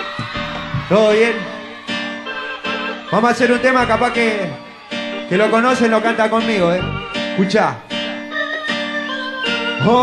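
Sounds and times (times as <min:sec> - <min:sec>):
guitar and keyboard notes: 0:00.0 - 0:10.0.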